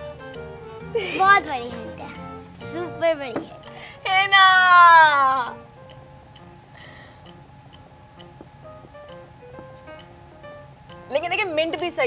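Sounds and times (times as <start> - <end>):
ticking clock-like beat: 0.0 - 12.0.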